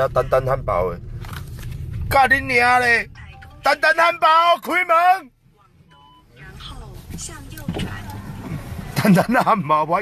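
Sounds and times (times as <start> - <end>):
car engine: 0.0 - 10.0
road rumble: 0.0 - 10.0.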